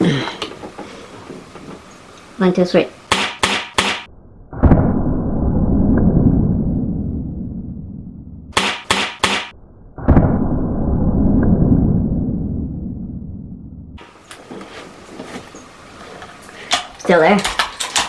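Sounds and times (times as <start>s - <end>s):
short bursts: 3.1s - 4.1s
air rifle shot: 3.1s - 5.0s, 8.5s - 10.4s
long low rumble: 4.1s - 8.6s, 9.5s - 14.0s.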